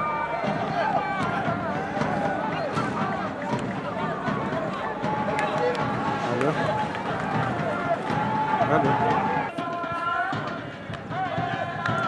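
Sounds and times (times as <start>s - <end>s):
football match crowd: 0.0s - 12.0s
voices talking and calling out: 0.0s - 12.0s.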